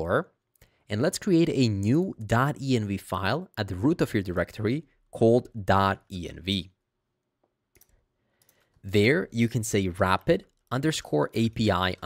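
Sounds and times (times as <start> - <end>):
man talking: 0.0 - 6.8, 8.8 - 12.0.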